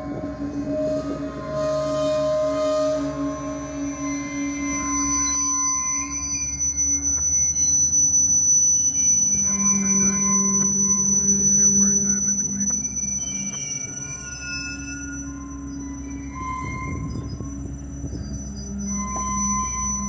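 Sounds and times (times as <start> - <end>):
high-pitched wheel squeal: 0.0 - 20.0.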